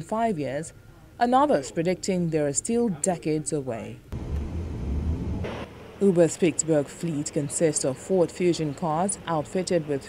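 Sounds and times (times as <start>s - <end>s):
vehicle rumble with faint hiss: 4.1s - 10.0s.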